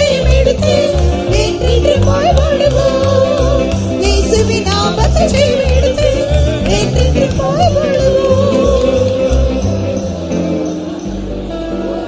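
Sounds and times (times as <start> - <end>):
person singing with vibrato: 0.0 - 12.0.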